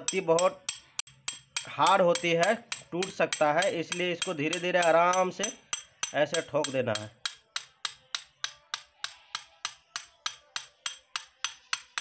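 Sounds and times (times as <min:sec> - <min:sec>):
hammer tapping metal blades: 0:00.0 - 0:12.0.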